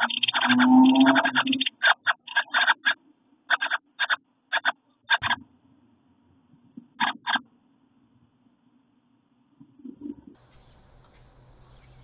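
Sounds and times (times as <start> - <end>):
wrens raspy scratching: 0.0 - 5.2, 10.4 - 12.0.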